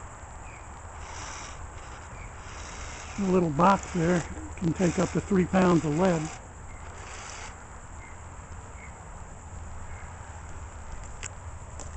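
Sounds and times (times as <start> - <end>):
faint high insect buzz: 0.0 - 9.0.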